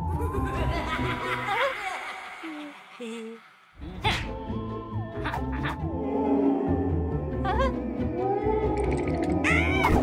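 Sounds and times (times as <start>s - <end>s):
eerie theremin-like music: 0.0s - 1.4s, 4.1s - 10.0s
cartoon voice laughing: 5.2s - 5.8s.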